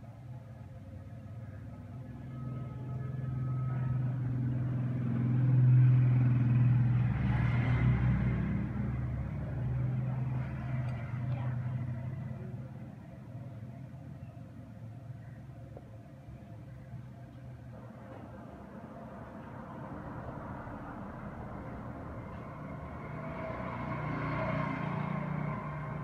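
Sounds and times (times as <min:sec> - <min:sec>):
motor vehicle passing by: 0:03.0 - 0:13.0, 0:18.3 - 0:26.0.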